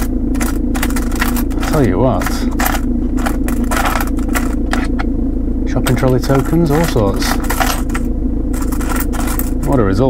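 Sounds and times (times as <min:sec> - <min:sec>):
coins clinking and scraping: 0:00.0 - 0:05.0, 0:05.9 - 0:09.8
diesel engine idling: 0:00.0 - 0:10.0.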